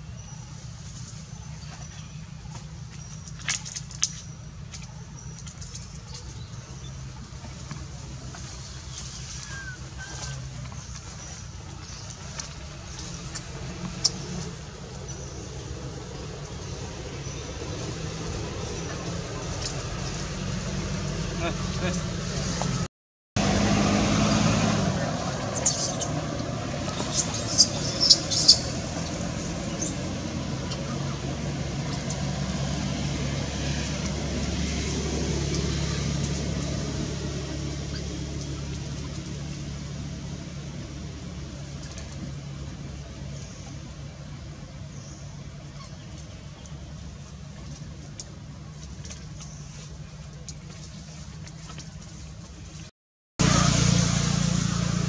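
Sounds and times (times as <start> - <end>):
vehicle engine humming: 0.0 - 55.0.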